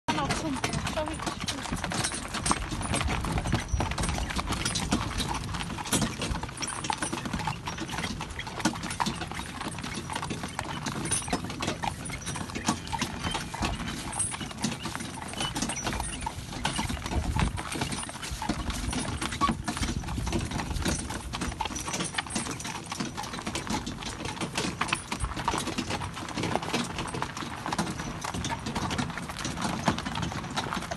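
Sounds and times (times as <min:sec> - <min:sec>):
carriage rattle: 0:00.1 - 0:30.9
hooves clip-clopping on gravel: 0:00.1 - 0:30.9.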